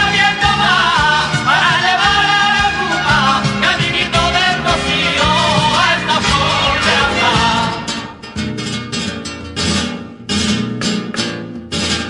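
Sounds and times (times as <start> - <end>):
strummed flamenco guitar: 0.0 - 12.0.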